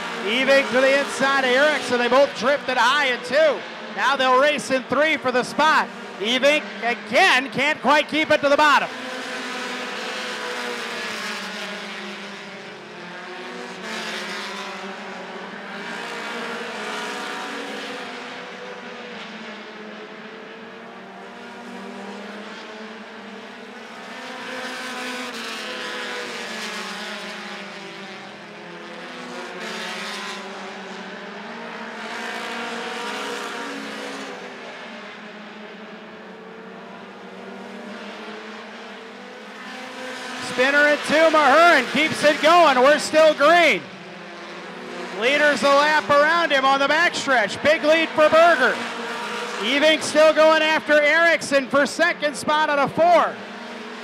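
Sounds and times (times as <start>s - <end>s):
stock cars racing past: 0.0s - 54.0s.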